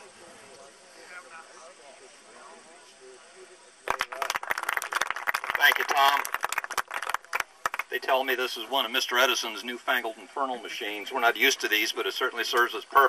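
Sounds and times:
group of people talking: 0.0 - 13.0.

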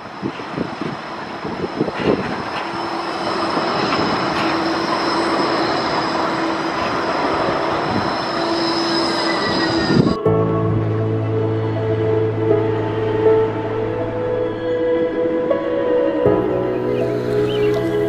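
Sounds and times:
tram wheels on rails: 0.0 - 10.2
tram motor hum: 0.0 - 18.0.

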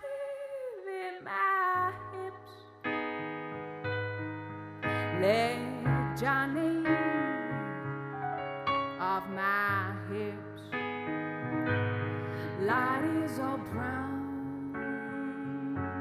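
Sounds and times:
grand piano chords: 1.6 - 16.0
woman singing long notes: 12.6 - 16.0.

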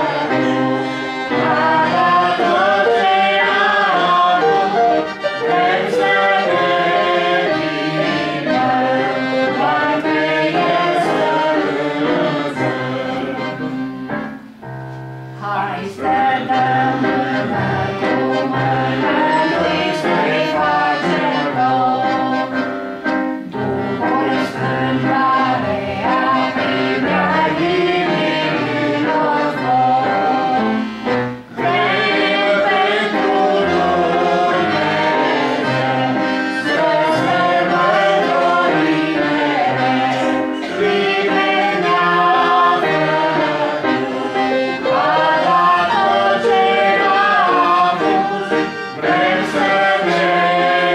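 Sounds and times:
woman and man singing a hymn: 0.0 - 14.0, 15.4 - 22.6, 23.5 - 50.9
held instrumental accompaniment: 0.0 - 50.9.

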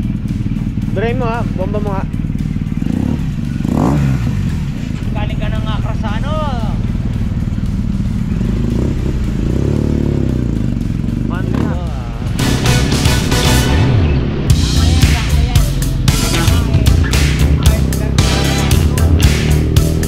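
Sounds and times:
motorcycle engine idling and revving: 0.0 - 20.0.

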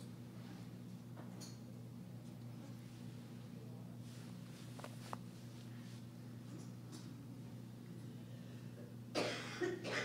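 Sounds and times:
low electrical hum: 0.0 - 10.0
person coughing: 9.1 - 10.0.

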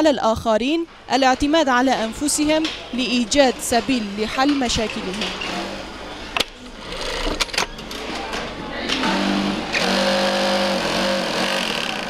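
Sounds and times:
sewing machine stitching: 9.0 - 12.0.

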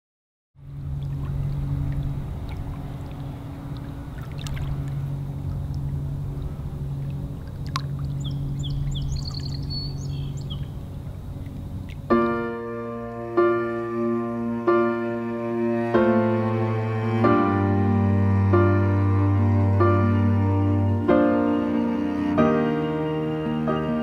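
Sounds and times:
motorboat engine droning: 0.6 - 24.0
water sloshing: 0.7 - 14.6
bird chirps: 8.1 - 11.0.

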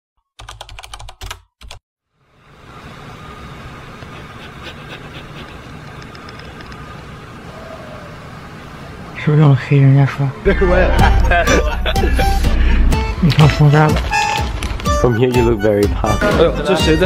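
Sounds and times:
low room hum: 2.2 - 9.2.

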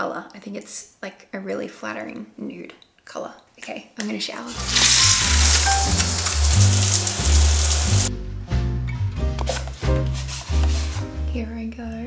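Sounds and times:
shower spray hissing: 4.5 - 8.1
music with deep bass line: 7.9 - 11.3.

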